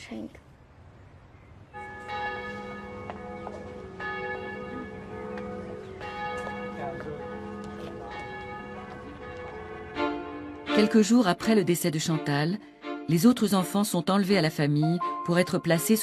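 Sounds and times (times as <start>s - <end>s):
bells ringing: 1.8s - 11.6s.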